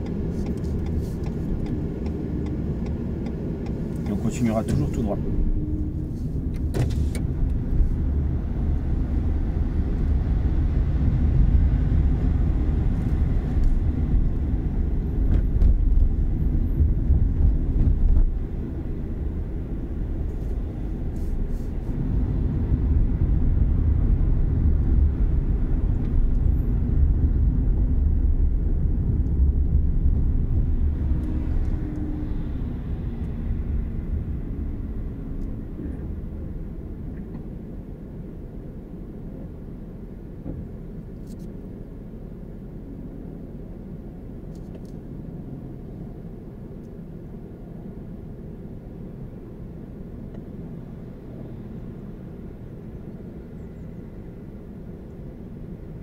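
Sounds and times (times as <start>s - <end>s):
car road rumble inside cabin: 0.0s - 56.0s.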